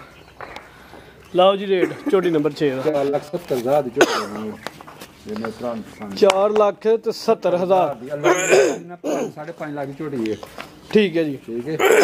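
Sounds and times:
men talking: 1.2s - 12.0s.

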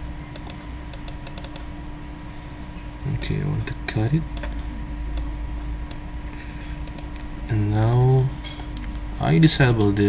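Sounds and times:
faint steady hum: 0.0s - 10.0s
keyboard and mouse clicks: 0.3s - 1.7s, 4.4s - 4.6s, 6.8s - 7.3s.

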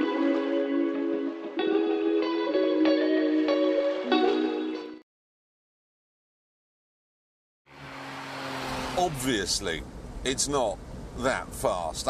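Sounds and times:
car engine running: 7.7s - 11.9s
wind and road noise: 7.7s - 12.0s.

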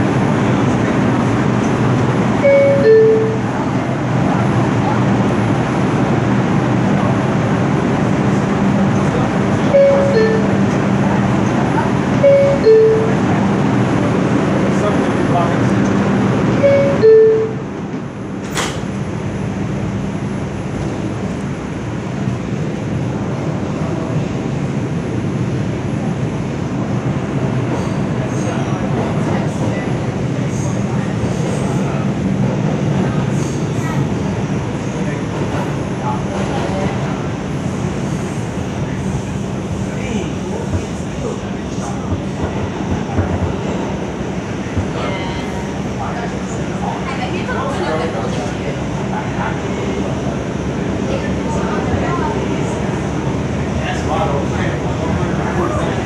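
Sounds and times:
subway car rumble: 0.0s - 56.0s.

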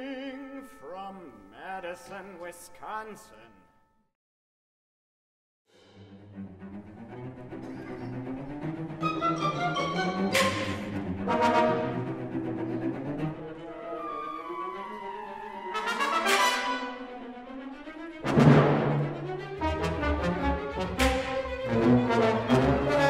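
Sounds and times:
orchestral music: 5.7s - 23.0s
sharp orchestral accents: 5.9s - 23.0s.

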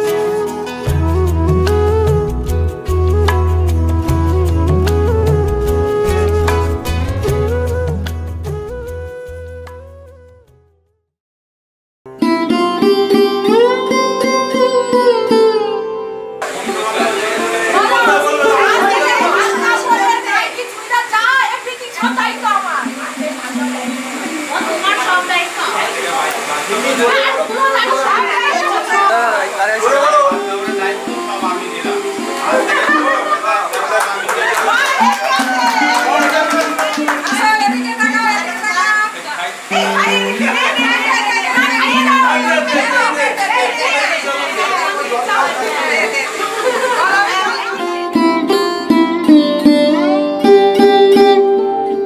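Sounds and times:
several voices: 16.4s - 48.2s.

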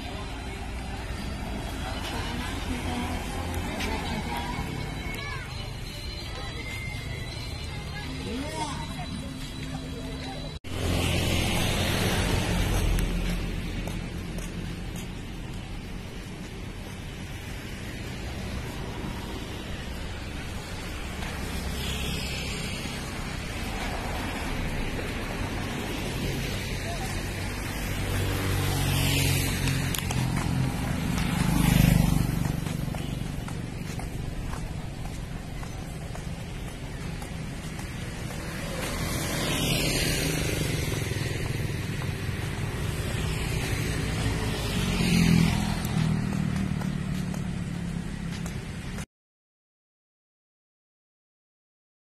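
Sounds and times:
vehicles passing: 0.0s - 49.0s
steady traffic rumble: 0.0s - 49.1s.

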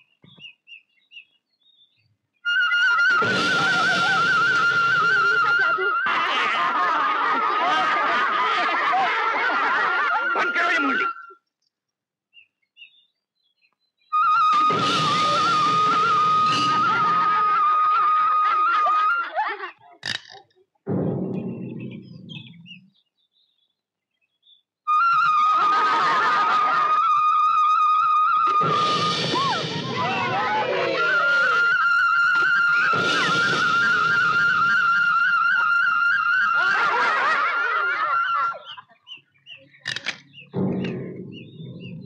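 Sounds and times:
film soundtrack music: 2.5s - 11.4s, 14.1s - 19.4s, 20.9s - 23.1s, 24.9s - 42.0s.

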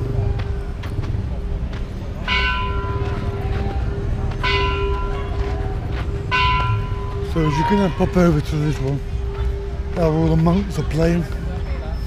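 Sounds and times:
temple bell ringing: 2.2s - 8.8s.

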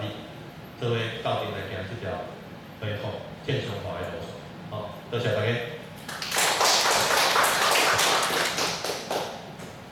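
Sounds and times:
audience applauding: 6.1s - 9.4s.

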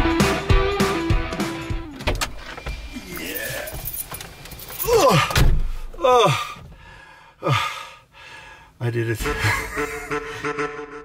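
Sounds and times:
music with steady beat: 0.0s - 2.0s.

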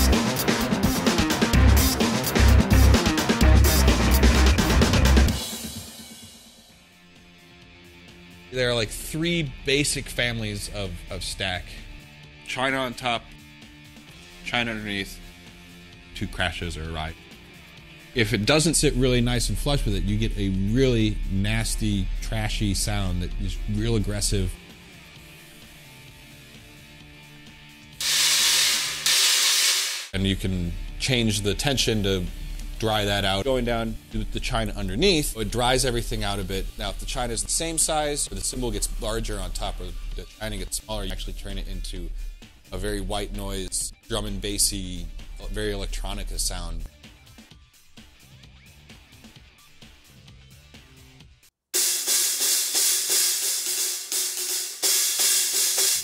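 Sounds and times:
quiet background music: 6.9s - 27.9s, 30.2s - 47.0s
cymbal crash: 28.0s - 30.2s, 51.8s - 56.0s
cymbal stack crashes: 28.0s - 30.2s.

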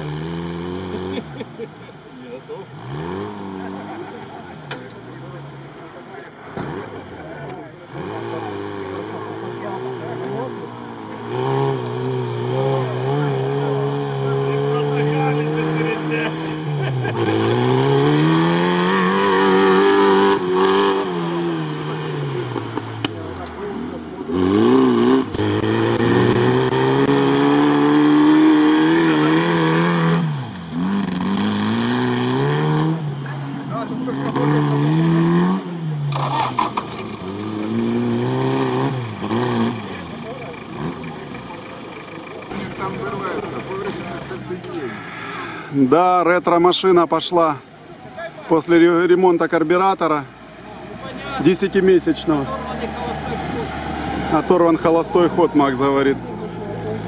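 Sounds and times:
car engine revving hard: 0.0s - 1.6s, 2.6s - 4.6s, 5.2s - 46.0s, 49.7s - 57.0s.

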